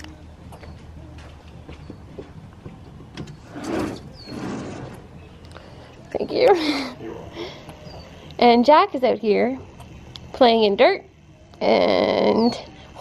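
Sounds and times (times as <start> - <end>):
steady low hum: 0.0 - 13.0
mesh screen scraping along track: 3.4 - 5.1.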